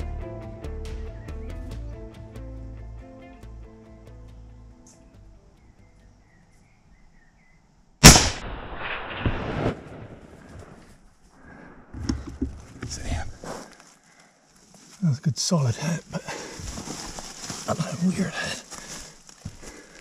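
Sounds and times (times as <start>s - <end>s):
rifle shot: 8.0s - 10.8s.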